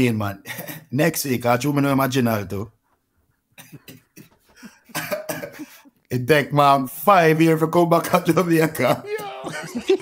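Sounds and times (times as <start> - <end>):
men laughing breathily: 3.6 - 5.9, 9.1 - 10.0.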